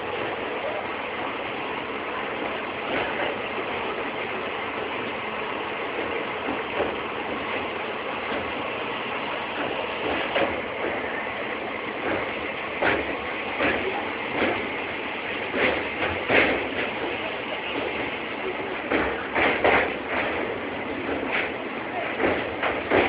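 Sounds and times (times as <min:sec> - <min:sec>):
train rattling on rails: 0:00.0 - 0:23.0.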